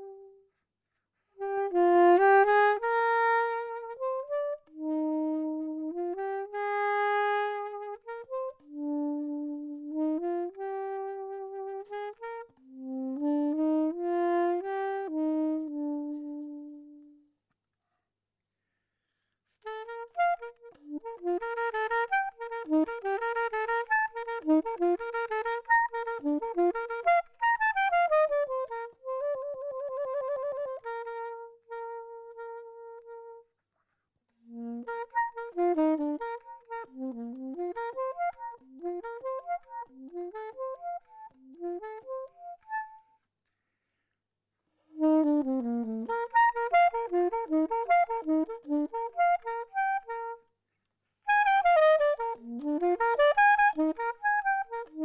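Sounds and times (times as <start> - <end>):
soprano saxophone playing: 0.0 - 0.6, 1.2 - 17.4, 19.1 - 33.6, 34.3 - 43.7, 44.8 - 50.6, 51.2 - 55.0.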